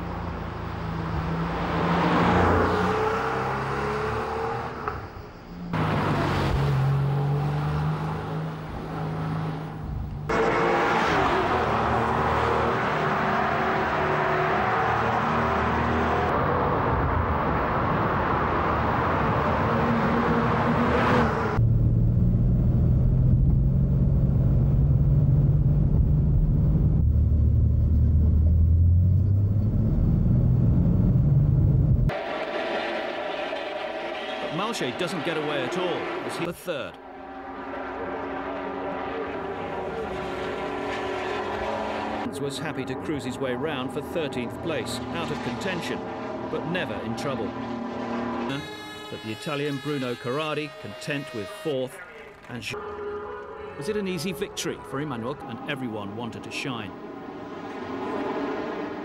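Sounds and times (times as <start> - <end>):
car engine accelerating: 0.0 - 48.6.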